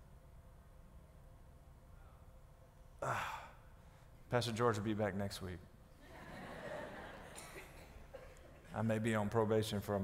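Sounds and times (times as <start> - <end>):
man sighing: 3.0 - 3.7
breathy uh into microphone: 3.0 - 4.2.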